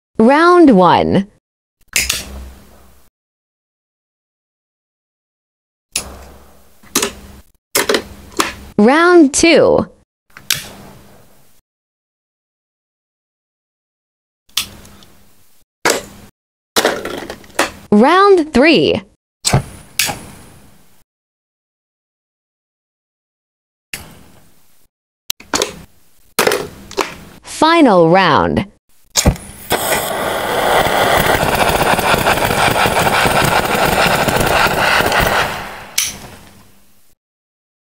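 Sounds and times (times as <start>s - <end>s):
lighter flame hiss: 29.6s - 36.2s
lighters clicking: 34.5s - 36.2s
lighter clicks: 35.9s - 36.2s.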